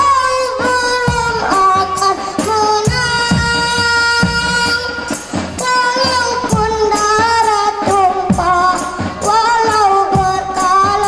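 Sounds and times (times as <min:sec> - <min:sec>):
child singing through microphone: 0:00.0 - 0:11.0
frame drum beats: 0:00.0 - 0:11.0.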